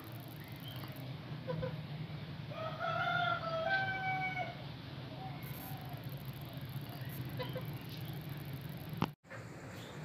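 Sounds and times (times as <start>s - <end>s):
rooster crowing: 2.5s - 4.6s.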